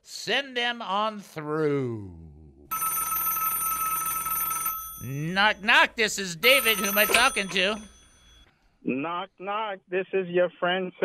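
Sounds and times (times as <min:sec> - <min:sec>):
telephone ringing electronic trill: 0:02.7 - 0:08.4.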